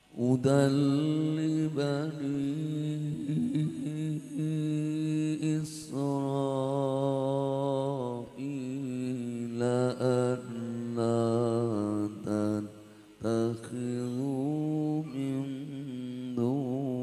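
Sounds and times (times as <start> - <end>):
man chanting melodically: 0.2 - 17.0.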